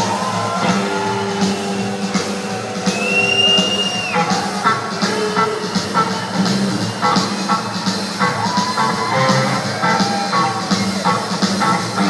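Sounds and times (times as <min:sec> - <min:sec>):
live rock band playing: 0:00.0 - 0:12.0
steady drum beat: 0:00.0 - 0:12.0.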